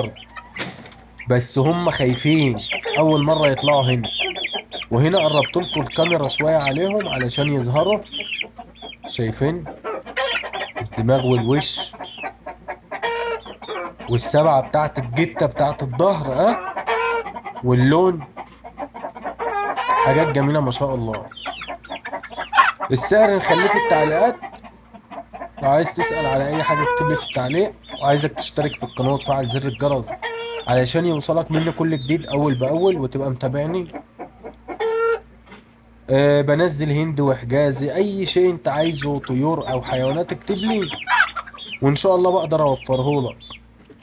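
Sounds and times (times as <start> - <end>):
high-pitched chicken call: 0.0 - 9.1, 9.8 - 14.3, 16.3 - 17.6, 19.1 - 33.1, 34.3 - 35.3, 38.7 - 44.0
chicks chirping: 0.0 - 44.0.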